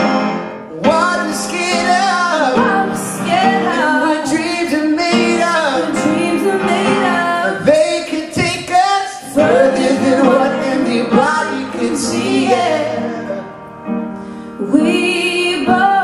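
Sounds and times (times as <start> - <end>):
upright piano accompaniment: 0.0 - 16.0
woman singing into a microphone: 2.6 - 4.5, 5.8 - 7.6, 14.6 - 16.0.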